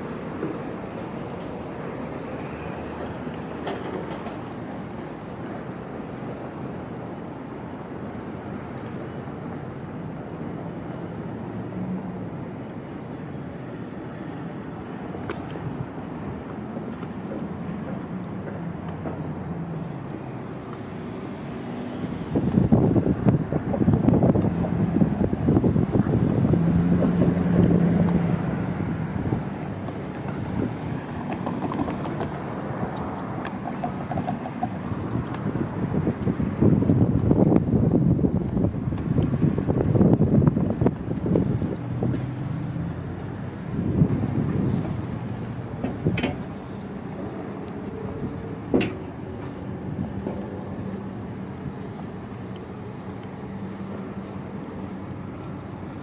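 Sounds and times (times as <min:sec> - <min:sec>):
street traffic: 0:00.0 - 0:56.0
louder vehicle passing: 0:21.6 - 0:29.8.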